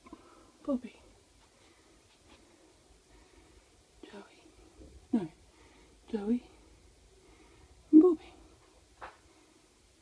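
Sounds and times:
soft whispered voice: 0.6s - 1.6s, 4.0s - 5.4s, 7.9s - 8.7s.

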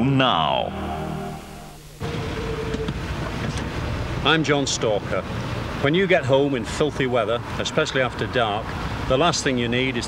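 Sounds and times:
faint steady hum: 0.0s - 5.8s.

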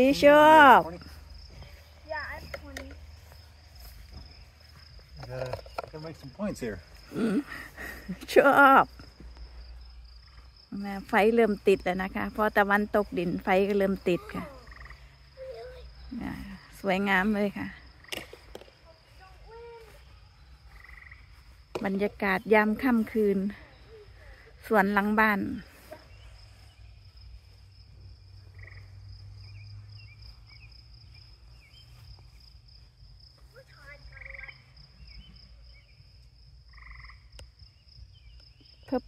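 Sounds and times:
insects chirring: 0.0s - 39.0s
frog trilling: 14.3s - 15.2s, 20.7s - 21.2s, 28.5s - 29.0s, 36.7s - 37.3s.

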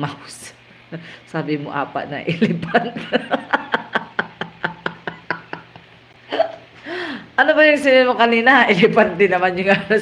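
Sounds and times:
woman laughing: 2.3s - 6.8s.

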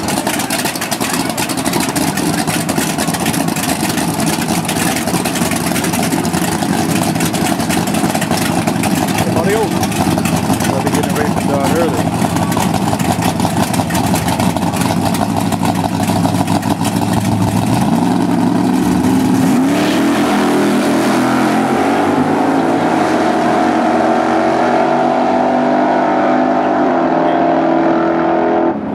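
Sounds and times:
drag race cars idling and revving: 0.0s - 28.9s
cars accelerating hard: 1.0s - 28.9s.

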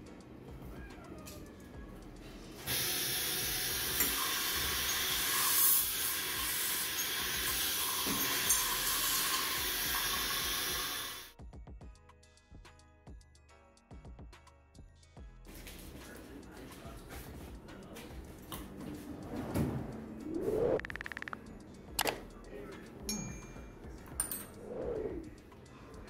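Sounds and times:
music: 0.0s - 26.0s
dental equipment hissing: 2.7s - 11.3s.

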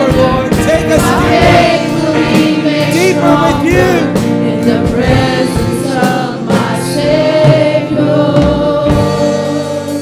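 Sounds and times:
woman singing into microphone: 4.3s - 10.0s.

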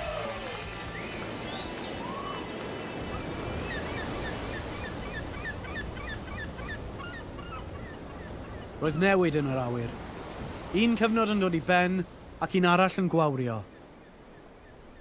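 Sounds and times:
surf on shoreline: 0.0s - 15.0s
wind: 0.0s - 15.0s
birds calling: 0.4s - 15.0s.

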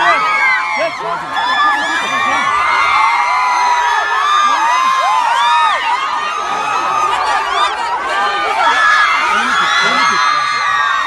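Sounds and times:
crowd cheering and screaming: 0.0s - 11.0s.

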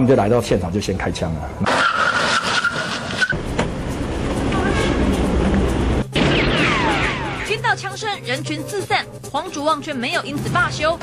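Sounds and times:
car engine rumble: 1.7s - 6.2s.

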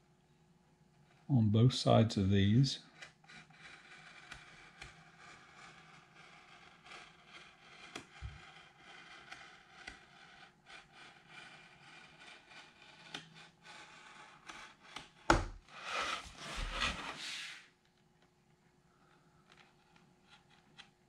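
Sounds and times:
pen scratching on tube: 2.8s - 17.6s.

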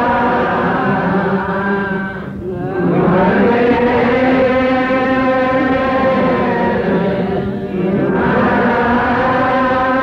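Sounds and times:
devotional chanting voice: 0.0s - 10.0s.

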